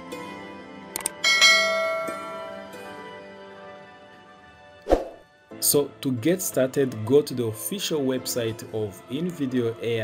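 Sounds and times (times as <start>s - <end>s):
bell chime ringing: 1.2s - 2.8s.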